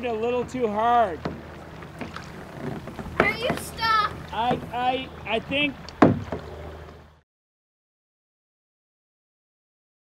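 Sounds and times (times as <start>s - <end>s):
kayak brushing through grass: 0.5s - 7.2s.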